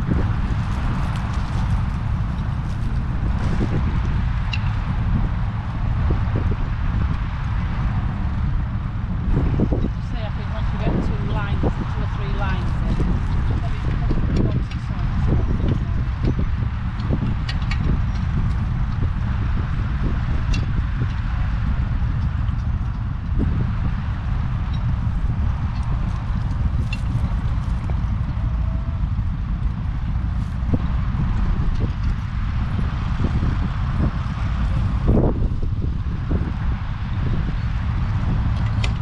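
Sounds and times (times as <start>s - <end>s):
wind rumbling on microphone: 0.0s - 39.0s.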